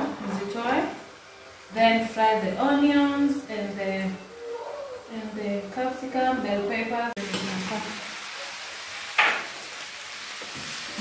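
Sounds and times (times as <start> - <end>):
vegetables sizzling in a pan: 0.0 - 4.4, 7.2 - 11.0.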